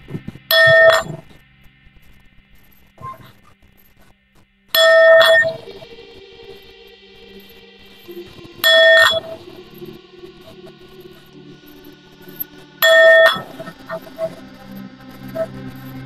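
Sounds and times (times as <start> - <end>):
singing bowl ringing: 0.5 - 1.2, 4.8 - 15.5.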